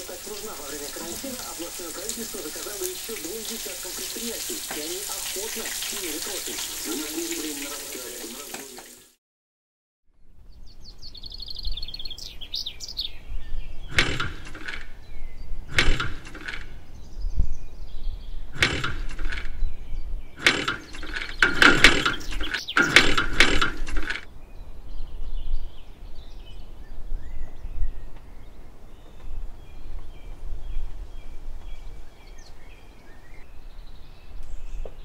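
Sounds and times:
harsh rasping bird calls: 0:00.0 - 0:09.0, 0:11.1 - 0:17.2, 0:18.2 - 0:24.3
high bird chirps: 0:10.6 - 0:24.0.

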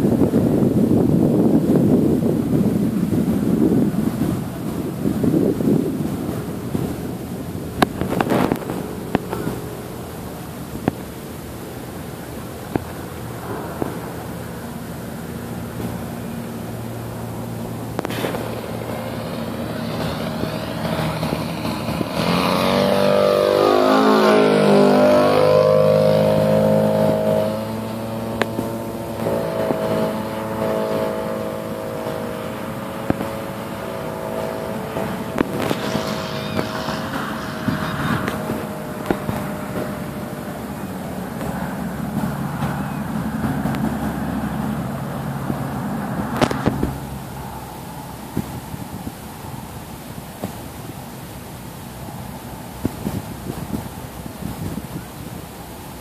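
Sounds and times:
model airplane engine buzzing: 0:00.0 - 0:56.0.

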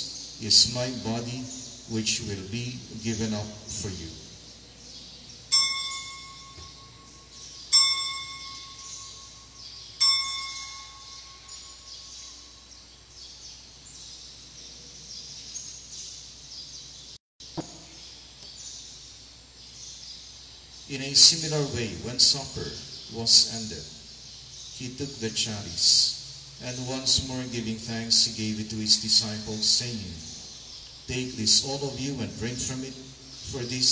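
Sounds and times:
altar bell ringing: 0:05.5 - 0:12.7.

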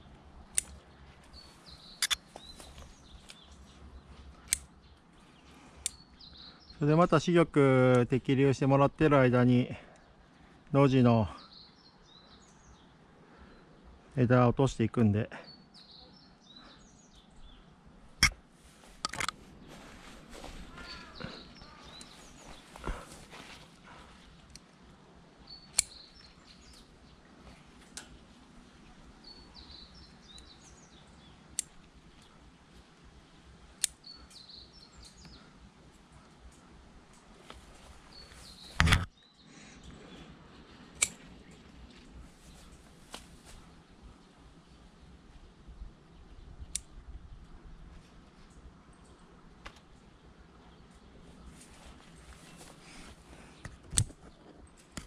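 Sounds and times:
small birds chirping: 0:00.0 - 0:55.0
pruning shears snipping: 0:02.0 - 0:03.4, 0:25.7 - 0:26.7, 0:38.5 - 0:39.1, 0:40.9 - 0:41.3.

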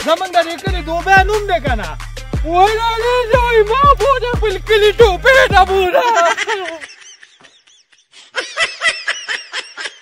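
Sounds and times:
person laughing: 0:05.0 - 0:10.0.

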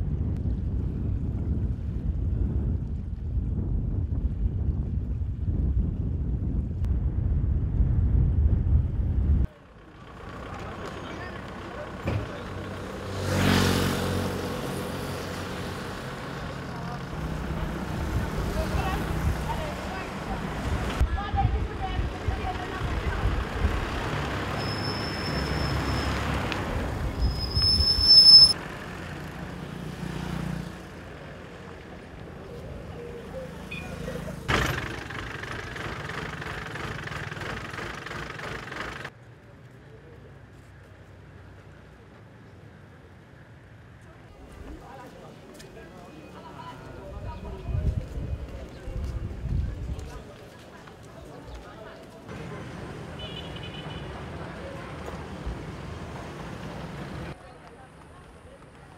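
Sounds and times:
motor traffic passing: 0:09.4 - 0:58.9
high whistling tones: 0:27.2 - 0:28.6
voices in background: 0:43.8 - 0:55.8, 0:57.3 - 0:58.9.

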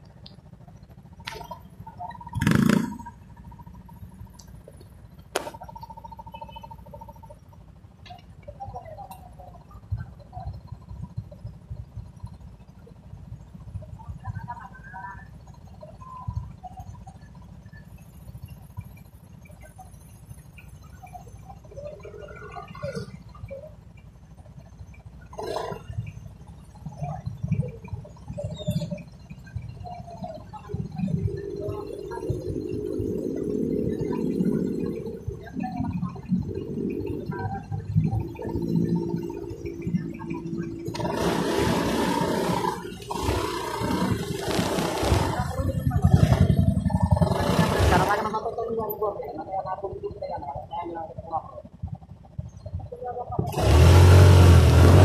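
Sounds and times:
low traffic rumble: 0:00.0 - 0:55.0
motorcycle engines running: 0:00.0 - 0:55.0.

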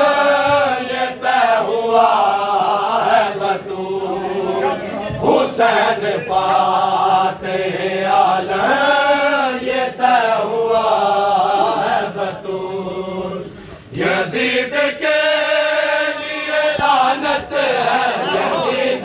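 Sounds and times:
men chanting a lament: 0:00.0 - 0:19.0.

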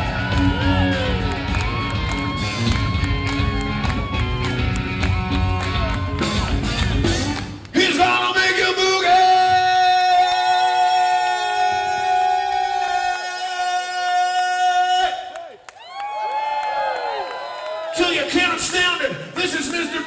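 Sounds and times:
crowd whooping and shouting: 0:00.0 - 0:07.2, 0:09.4 - 0:18.6.

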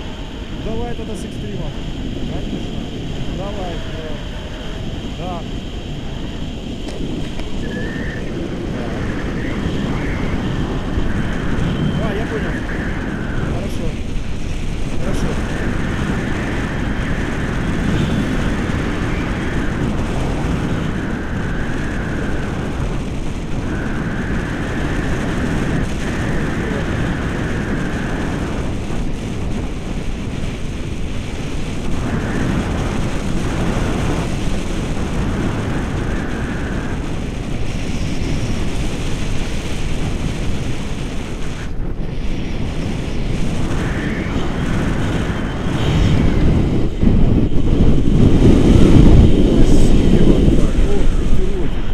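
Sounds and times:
wind rushing over microphone: 0:00.0 - 0:51.9.

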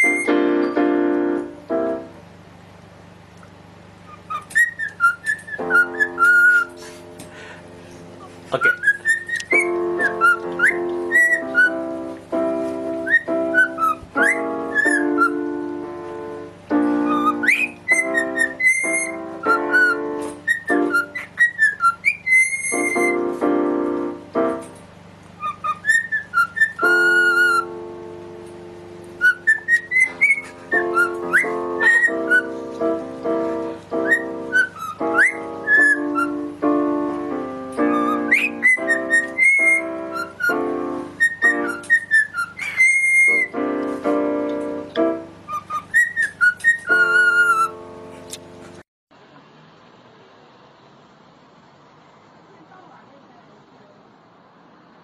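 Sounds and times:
cockatiel whistling: 0:00.0 - 0:00.9, 0:04.1 - 0:07.0, 0:08.2 - 0:15.7, 0:16.7 - 0:23.6, 0:25.4 - 0:27.8, 0:29.2 - 0:37.0, 0:37.8 - 0:48.4
piano chords on keyboard: 0:00.0 - 0:48.9.

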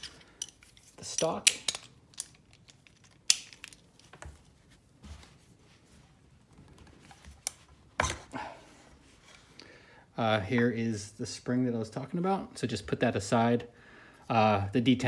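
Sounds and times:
rifle parts clicking and knocking: 0:00.0 - 0:04.4.

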